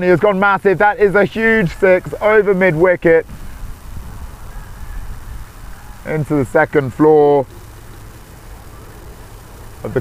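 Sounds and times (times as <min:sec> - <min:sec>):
faint even hiss: 0:00.0 - 0:10.0
low outdoor rumble: 0:00.0 - 0:10.0.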